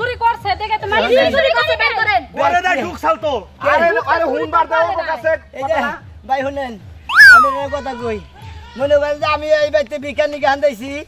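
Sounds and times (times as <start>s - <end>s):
meow-like cry sound effect: 7.1s - 7.8s.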